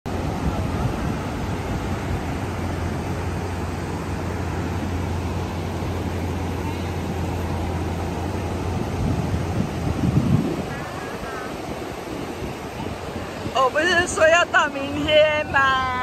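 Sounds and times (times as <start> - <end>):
low engine hum: 0.1 - 16.0
rain: 0.1 - 16.0
water rushing across road: 0.1 - 16.0
wind noise on microphone: 0.1 - 16.0.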